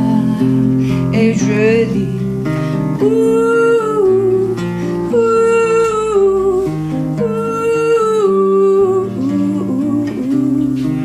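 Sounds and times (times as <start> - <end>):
acoustic guitar: 0.0 - 11.0
woman singing wordless notes: 0.0 - 11.0.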